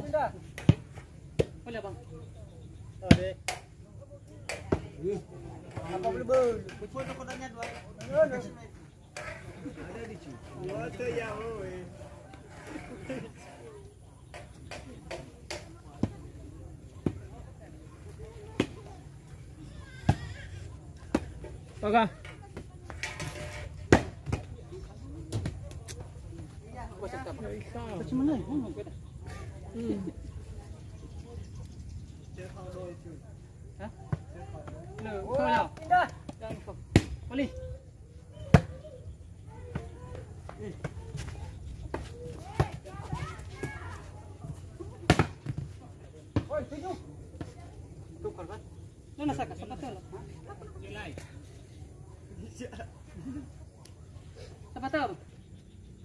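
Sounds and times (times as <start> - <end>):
people shouting and talking: 0.0 - 56.0.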